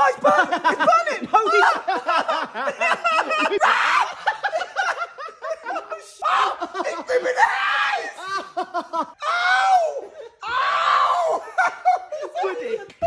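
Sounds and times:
man laughing: 0:00.0 - 0:09.2, 0:11.1 - 0:13.0
man screaming and yelling: 0:06.1 - 0:08.4, 0:09.2 - 0:11.6.

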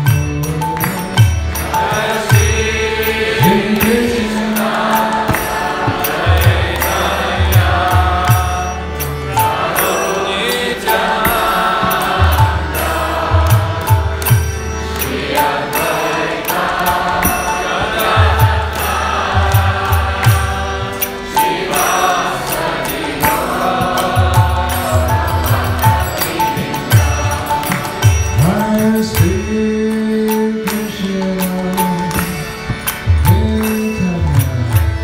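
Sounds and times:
harmonium: 0:00.0 - 0:35.0.

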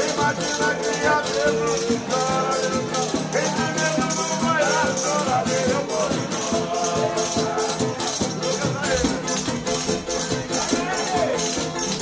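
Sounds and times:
hand-played frame drum: 0:00.0 - 0:12.0
men singing together: 0:00.0 - 0:12.0
steady rattling beat: 0:00.0 - 0:12.0
strummed acoustic guitars: 0:00.0 - 0:12.0.

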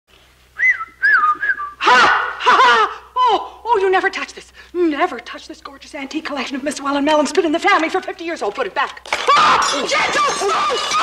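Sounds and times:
man whistling: 0:00.6 - 0:02.1.

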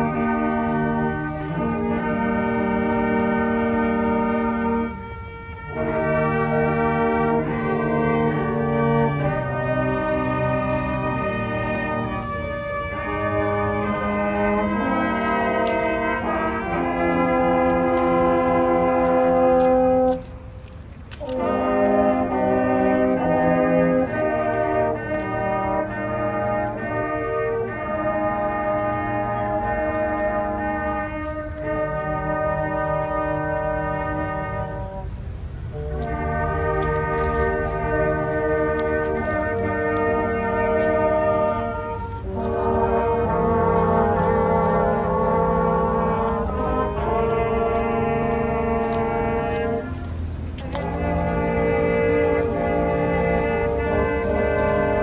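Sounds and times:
brass band playing slowly: 0:00.0 - 0:55.0.

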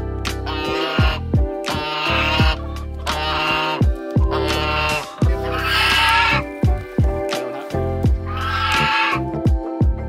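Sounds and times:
background music with steady beat: 0:00.0 - 0:10.0
goose harsh calls: 0:00.4 - 0:06.6, 0:07.4 - 0:09.2.

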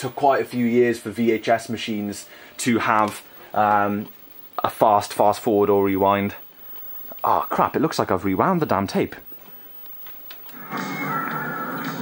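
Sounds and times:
film soundtrack music through tv speaker: 0:09.5 - 0:12.0.

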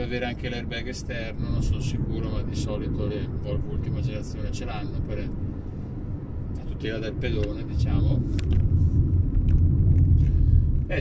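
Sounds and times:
road and drivetrain rumble in car: 0:00.0 - 0:11.0.

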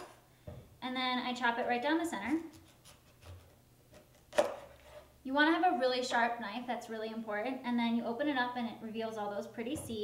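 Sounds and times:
knife chopping onto cutting board: 0:02.5 - 0:04.7.

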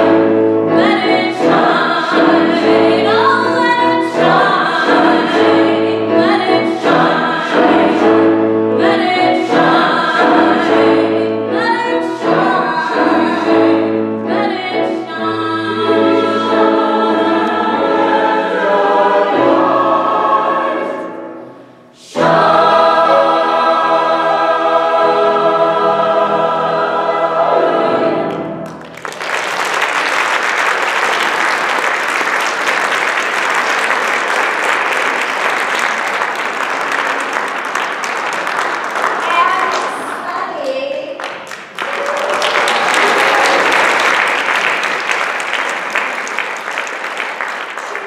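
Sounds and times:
mixed choir singing: 0:00.0 - 0:28.8
audience applause: 0:28.6 - 0:48.0.

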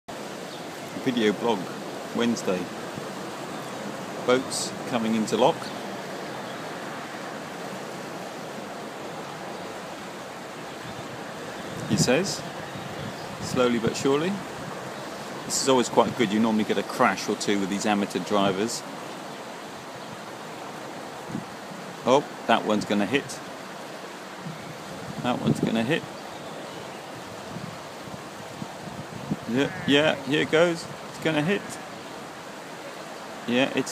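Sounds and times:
water rushing at lock gate: 0:00.1 - 0:33.9
wind on microphone: 0:05.6 - 0:16.3, 0:21.1 - 0:21.9, 0:24.3 - 0:31.2.

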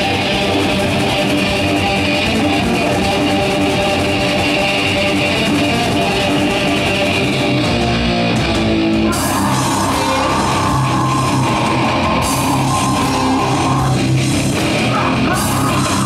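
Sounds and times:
distorted electric guitar riff: 0:00.0 - 0:16.0
heavy metal band playing: 0:00.0 - 0:16.0.

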